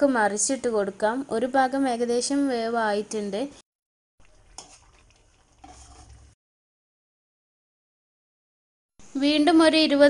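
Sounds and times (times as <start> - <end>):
chicken cooking in oil: 4.2 - 6.4.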